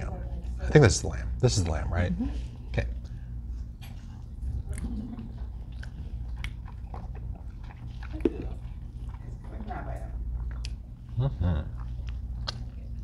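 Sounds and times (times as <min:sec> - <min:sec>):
low steady hum: 0:00.0 - 0:13.0
man chewing meat: 0:03.0 - 0:13.0
wet mouth clicks and smacks: 0:05.7 - 0:08.6, 0:10.5 - 0:10.8, 0:12.0 - 0:12.7.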